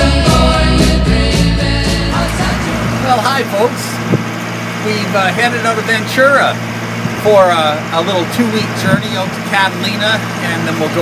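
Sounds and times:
boat engine humming: 0.0 - 11.0.

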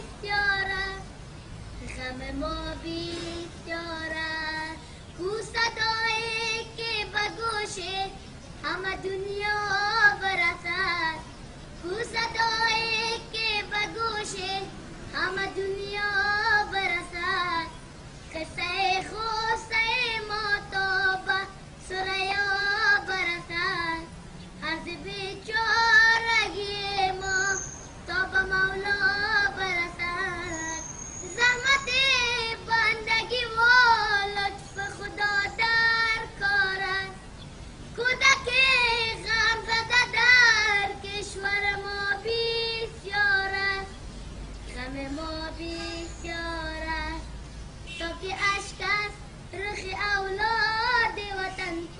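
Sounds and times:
boy singing solo: 0.0 - 37.3, 44.7 - 47.4.

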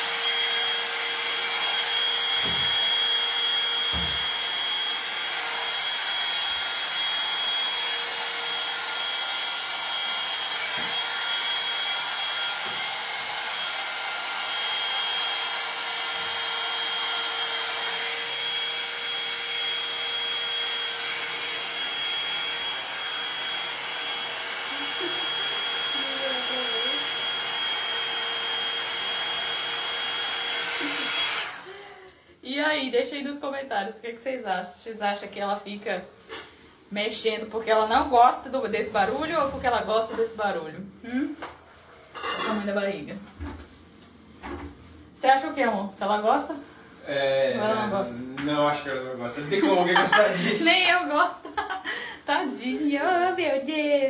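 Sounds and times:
hot-air brush running: 0.0 - 32.1, 35.8 - 43.8, 44.4 - 54.0.

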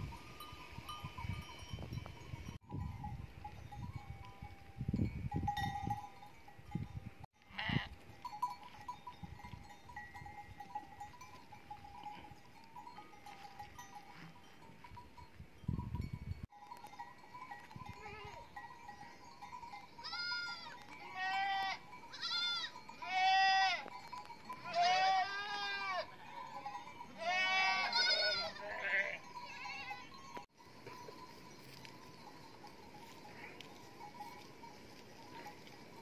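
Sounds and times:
sheep bleating: 20.0 - 23.9, 24.6 - 26.1, 27.2 - 30.1.

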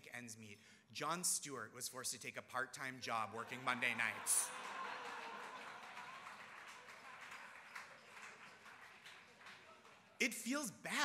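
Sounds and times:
audience laughing: 3.4 - 6.4
audience clapping: 3.4 - 10.2.

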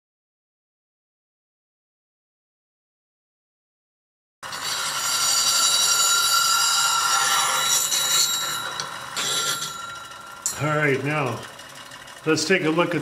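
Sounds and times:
bench grinder grinding metal: 4.4 - 13.0.

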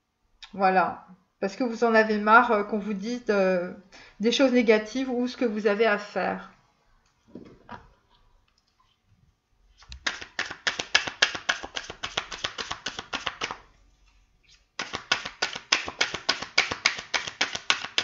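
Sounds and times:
cards being shuffled: 9.8 - 13.6, 14.4 - 18.0.

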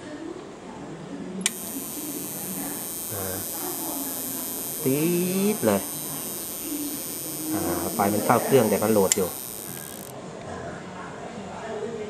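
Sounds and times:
television switch click: 1.4 - 10.1.

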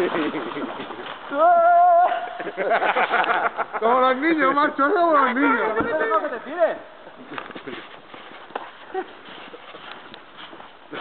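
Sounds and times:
footsteps crunching in snow: 7.2 - 11.0.

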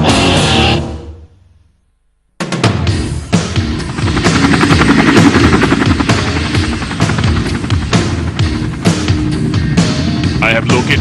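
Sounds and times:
music: 0.0 - 1.7, 2.4 - 11.0
cartoon helicopter rotor chopping: 3.2 - 10.9.

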